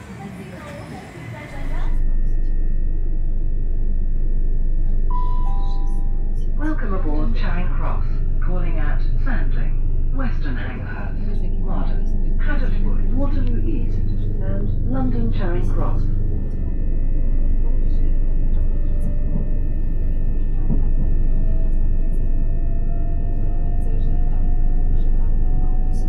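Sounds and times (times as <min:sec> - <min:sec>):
spoken announcement: 0:00.0 - 0:02.5, 0:04.8 - 0:22.6
train interior hum: 0:00.0 - 0:26.0.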